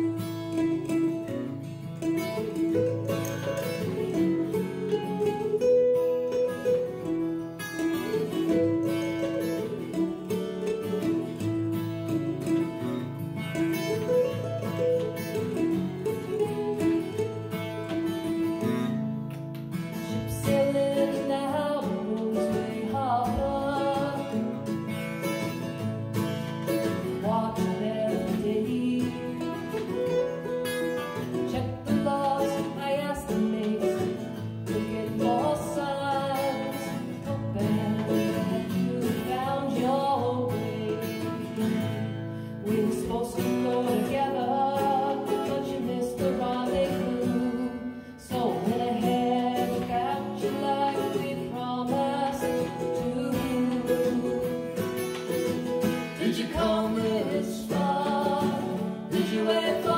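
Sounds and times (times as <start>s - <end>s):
woman singing: 0.0s - 12.9s, 13.6s - 18.7s, 19.9s - 26.0s, 26.6s - 59.9s
acoustic guitar: 0.0s - 59.9s
mandolin: 0.0s - 59.9s.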